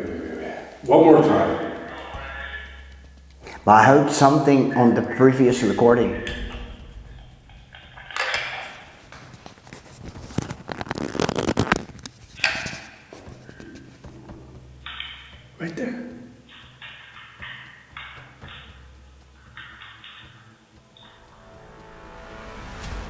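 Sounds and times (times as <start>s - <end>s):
crackly noise and clicks: 0.0s - 23.0s
muffled voice from small speaker: 0.4s - 2.8s.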